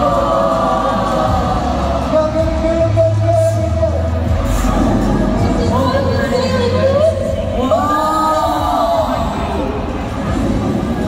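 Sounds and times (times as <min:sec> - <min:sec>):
choir-like singing music: 0:00.0 - 0:03.2.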